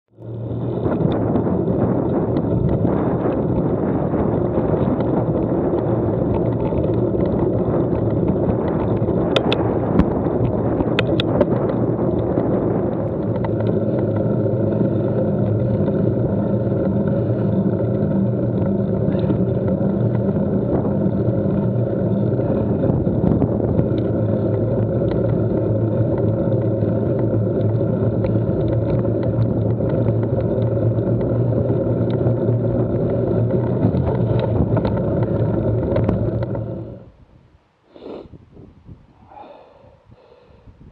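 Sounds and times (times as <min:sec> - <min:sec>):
vehicle engine hum: 0:00.1 - 0:37.4
road and wind noise: 0:00.1 - 0:40.9.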